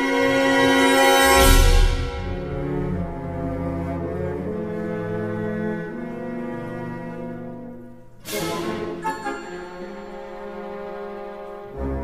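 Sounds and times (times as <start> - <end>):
held low orchestral chord: 0.0 - 12.0.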